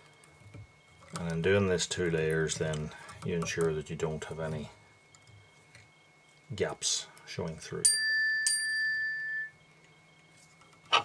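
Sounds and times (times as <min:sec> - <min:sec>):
small metallic bell ring: 0:07.8 - 0:09.6.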